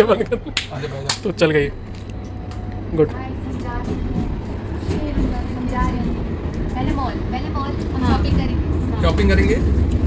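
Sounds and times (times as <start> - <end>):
tram running rumble: 0.0 - 10.0.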